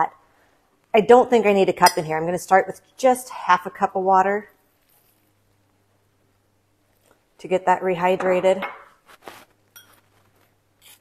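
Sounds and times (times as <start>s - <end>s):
spoon scraping and crunching in bowl: 9.1s - 11.0s.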